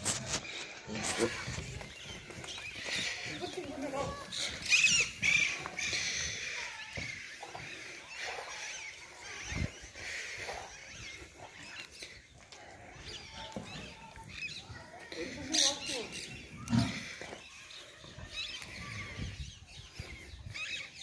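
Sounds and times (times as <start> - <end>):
animal calls: 0.1 - 19.4.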